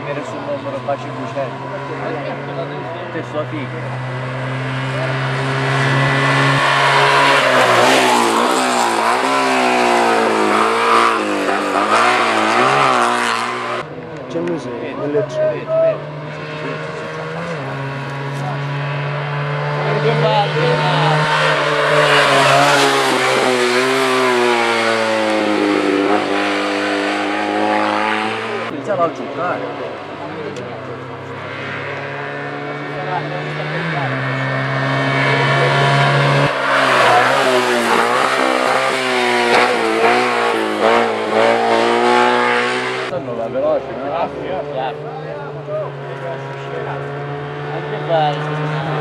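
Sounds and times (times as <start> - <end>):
race car engines revving: 0.0 - 49.0.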